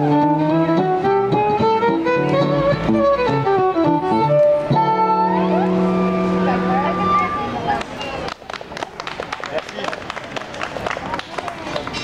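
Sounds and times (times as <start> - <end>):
acoustic guitar: 0.0 - 7.7
violin: 0.0 - 8.3
voices talking: 5.3 - 8.3
audience clapping: 7.8 - 12.0.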